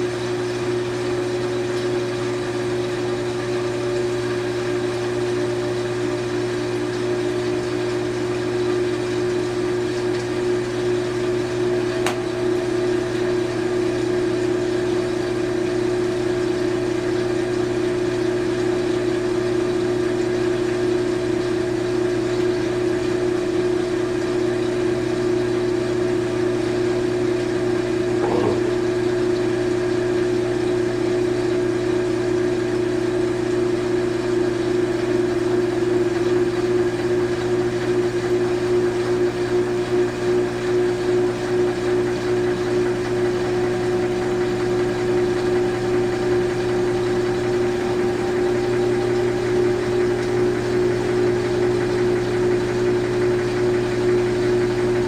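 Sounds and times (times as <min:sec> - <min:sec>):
washing machine spinning: 0:00.0 - 0:55.0.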